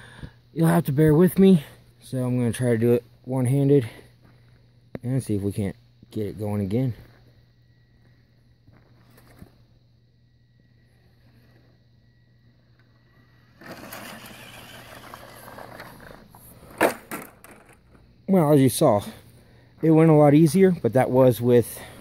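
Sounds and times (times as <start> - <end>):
electric motor whine: 13.0 - 16.4
tyres grinding on rock and gravel: 13.6 - 17.9.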